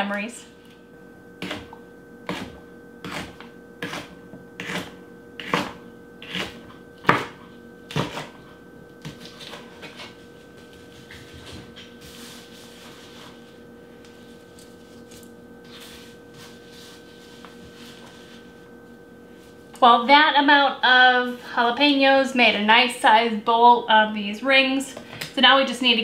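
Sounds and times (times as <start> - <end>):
knife chopping on cutting board: 1.4 - 8.4.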